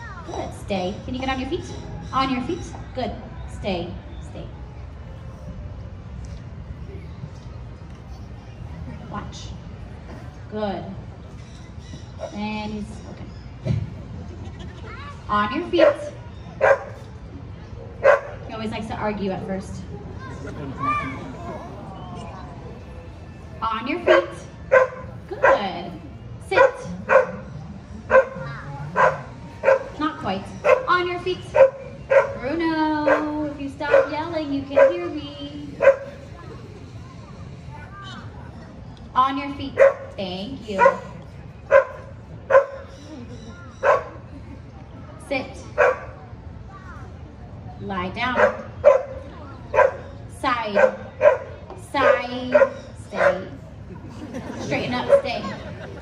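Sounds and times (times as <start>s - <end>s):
dog barking: 16.6s - 17.0s, 18.0s - 18.4s, 24.1s - 25.6s, 26.6s - 27.4s, 28.1s - 28.4s, 29.0s - 29.9s, 30.6s - 30.9s, 31.6s - 32.4s, 33.9s - 34.1s, 34.8s - 35.0s, 35.8s - 36.1s, 39.8s - 40.1s, 40.8s - 41.1s, 41.7s - 42.8s, 43.8s - 44.1s, 45.8s - 46.1s, 48.4s - 50.1s, 50.8s - 53.5s
dog whining bark: 28.1s - 29.9s, 35.8s - 36.1s, 41.7s - 42.9s, 43.8s - 44.2s, 48.4s - 50.1s.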